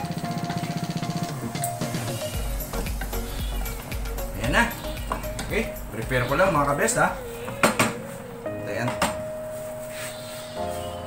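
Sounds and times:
background music chord: 0.0s - 11.0s.

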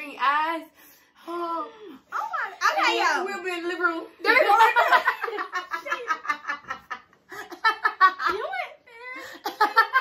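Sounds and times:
girls talking: 0.0s - 6.5s, 8.1s - 9.2s.

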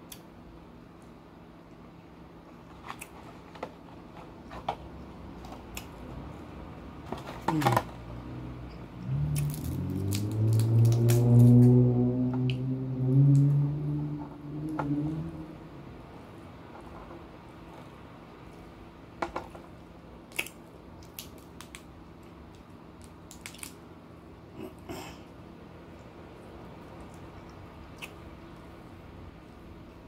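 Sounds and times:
crab shells cracking by hand: 9.4s - 11.2s, 20.3s - 23.8s.

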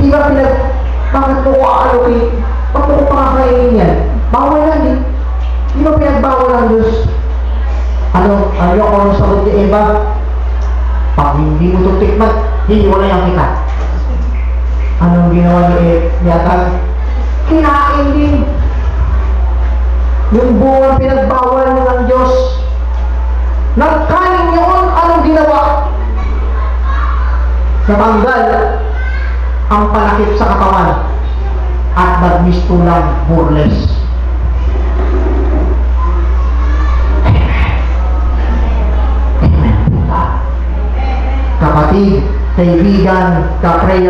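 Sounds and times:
faint indistinct voices: 0.0s - 44.0s
low electrical hum: 0.0s - 44.0s.

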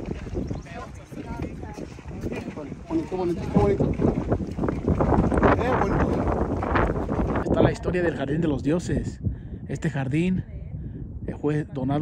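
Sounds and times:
wind rumbling on microphone: 0.0s - 12.0s
people talking: 0.6s - 3.9s, 5.4s - 6.4s.

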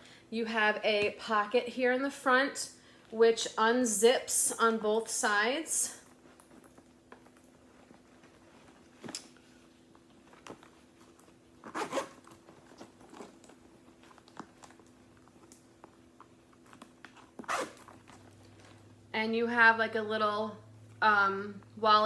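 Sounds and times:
handbag clicks and rustles: 6.0s - 18.9s
zipper pull: 11.6s - 13.5s, 17.1s - 18.4s.

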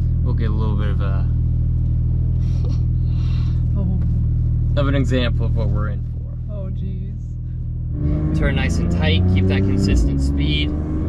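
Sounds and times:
car engine droning in cabin: 0.0s - 11.0s.

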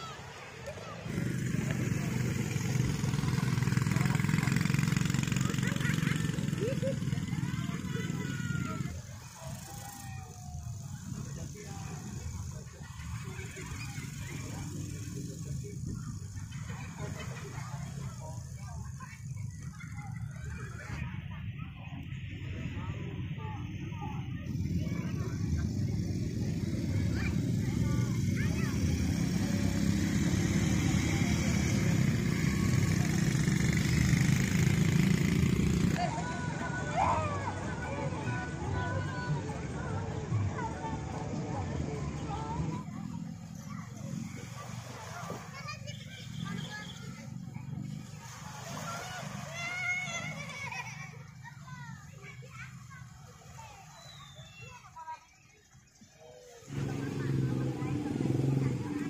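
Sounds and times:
quad bike engine running: 0.0s - 54.6s, 56.6s - 59.0s
children calling and shouting: 0.0s - 59.0s
people's voices: 0.0s - 59.0s.

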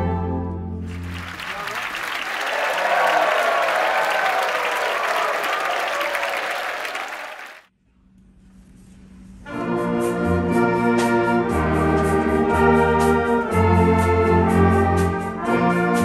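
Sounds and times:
audience applauding: 0.9s - 7.7s.

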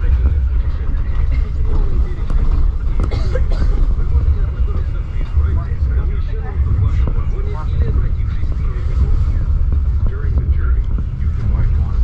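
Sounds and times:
train running gear rumble: 0.0s - 12.0s.

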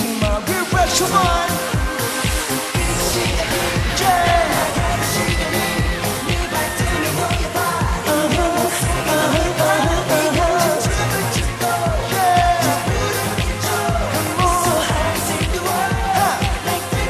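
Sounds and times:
dance track with steady beat: 0.0s - 17.0s
person singing: 0.0s - 17.0s.

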